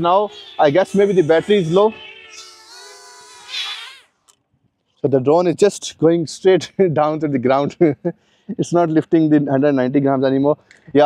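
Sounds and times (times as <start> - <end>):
drone propellers buzzing: 0.9 - 4.1.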